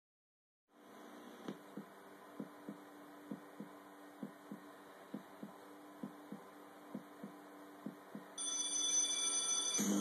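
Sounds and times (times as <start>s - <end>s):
steady hum: 0.7s - 8.6s
heartbeat double thumps: 1.6s - 8.4s.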